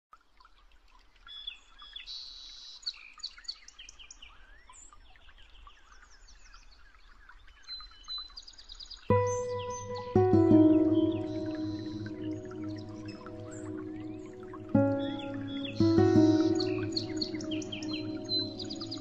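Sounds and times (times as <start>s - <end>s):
songbirds chirping: 1.3s - 19.0s.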